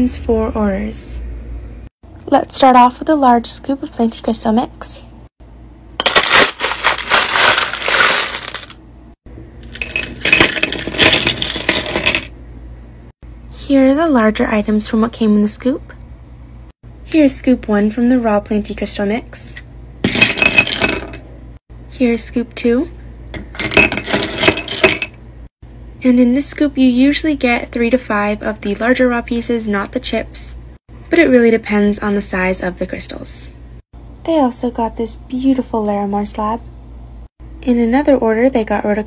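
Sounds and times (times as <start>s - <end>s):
stones clattering in a scoop: 6.0s - 8.8s.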